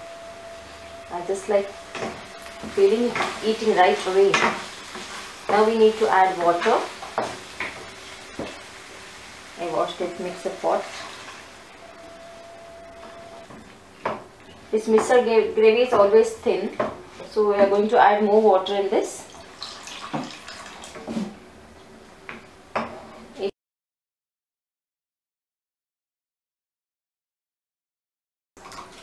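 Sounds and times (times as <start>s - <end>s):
faint sizzle: 0.0s - 21.4s
spatula knocking pan: 1.9s - 5.7s, 15.8s - 17.0s
spatula stirring peas in pan: 2.6s - 11.5s
wooden spoon knocking a pan: 15.8s - 17.0s
water pouring into a pan: 19.4s - 21.0s.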